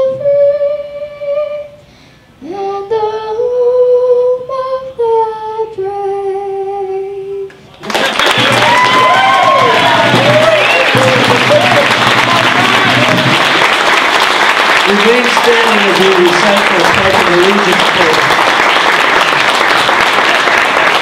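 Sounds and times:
audience applause and cheers: 7.8s - 21.0s.

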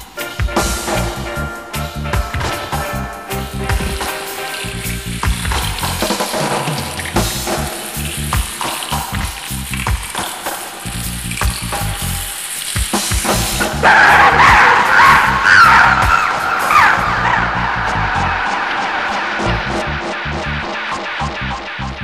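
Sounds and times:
reggae song: 0.0s - 22.0s
hissing noise: 0.9s - 21.9s.

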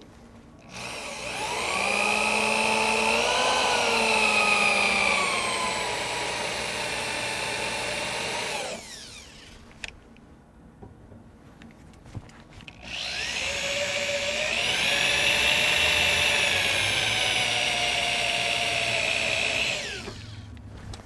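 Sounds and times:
electric drill whining: 0.6s - 9.8s, 12.8s - 20.5s.

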